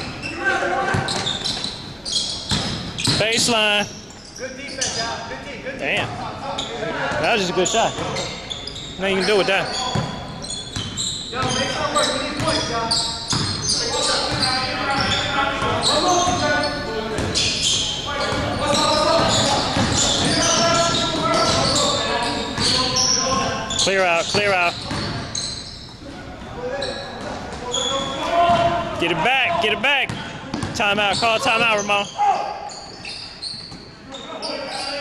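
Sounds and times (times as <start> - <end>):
basketball bouncing on hardwood: 24.3 - 25.3.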